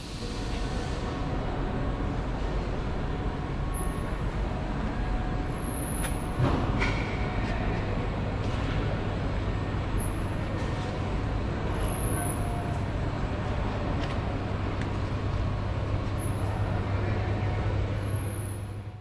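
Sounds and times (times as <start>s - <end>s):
continuous rumble and hiss: 0.0s - 19.0s.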